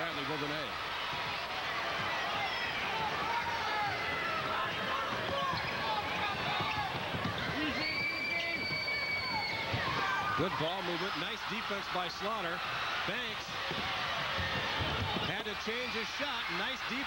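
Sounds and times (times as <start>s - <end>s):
crowd noise and shouting: 0.0s - 17.0s
sneakers squeaking: 4.6s - 10.5s.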